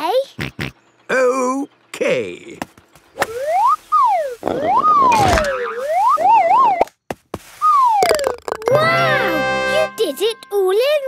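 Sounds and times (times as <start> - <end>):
cartoon slide whistle: 7.6 - 9.5.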